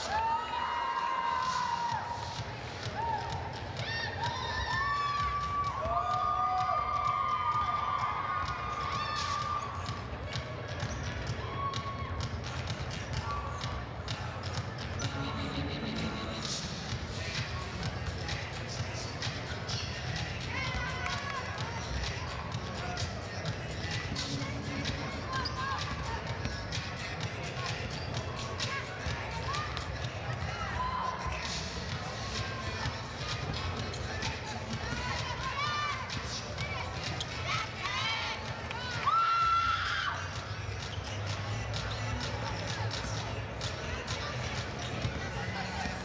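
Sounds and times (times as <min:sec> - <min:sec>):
crowd voices: 0:00.0 - 0:46.0
sneakers squeaking: 0:08.9 - 0:38.6, 0:40.1 - 0:46.0.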